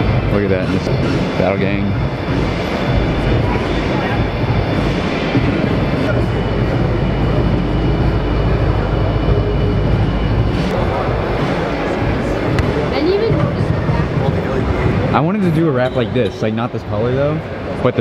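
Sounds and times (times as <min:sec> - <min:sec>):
crowd din indoors: 0:00.0 - 0:18.0.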